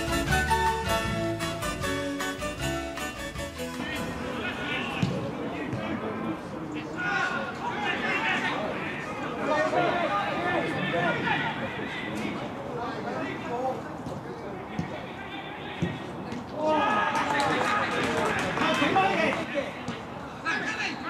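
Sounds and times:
instrumental music with a beat: 0.0s - 4.2s
players and spectators shouting: 6.8s - 13.5s, 14.8s - 19.8s.

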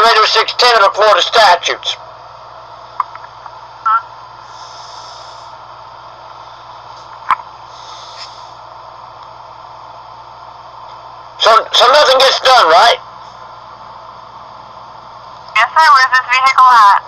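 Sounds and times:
phone line hum and hiss: 0.0s - 17.0s.

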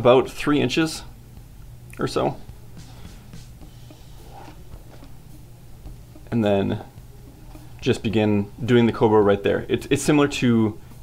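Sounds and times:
low hum: 0.0s - 9.8s.

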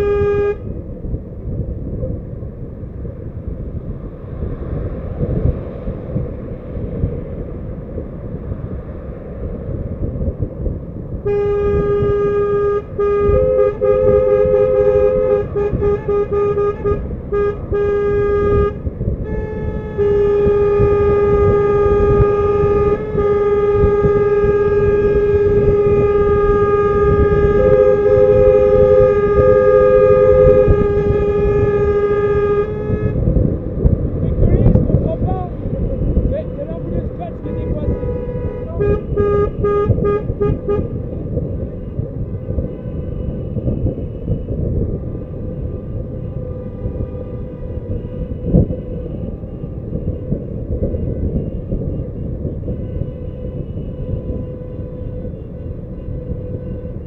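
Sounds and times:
car horn sounding: 0.0s - 0.8s, 11.2s - 57.0s
car driving rumble: 0.0s - 57.0s.

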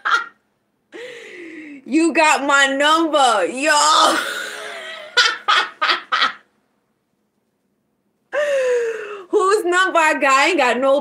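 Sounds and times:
woman laughing: 3.9s - 6.4s.

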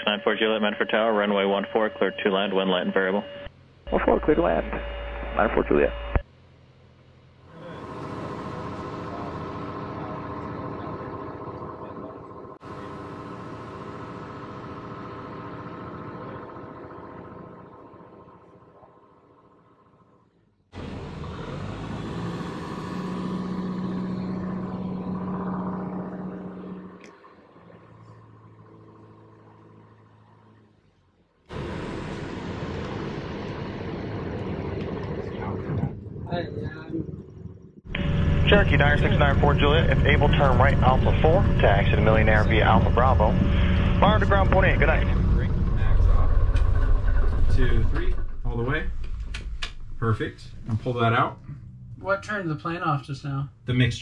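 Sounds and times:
steady low tone: 0.0s - 6.3s, 7.0s - 20.6s, 23.8s - 30.8s, 31.5s - 54.0s
propeller plane engine droning: 3.6s - 20.2s, 20.8s - 52.6s.

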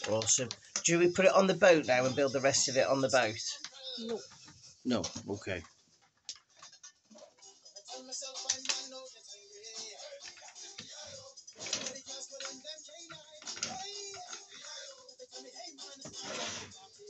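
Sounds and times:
background music: 0.0s - 5.6s, 6.9s - 17.0s.

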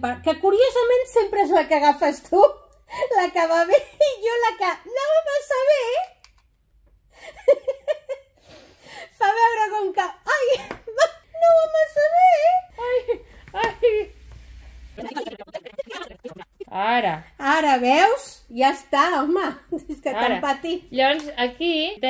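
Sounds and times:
women giggling and laughing: 15.0s - 16.7s
unclear speech: 15.0s - 22.0s.

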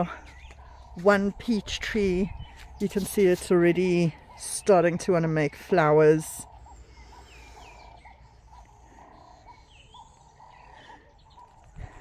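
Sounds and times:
birds chirping faintly: 0.0s - 12.0s.

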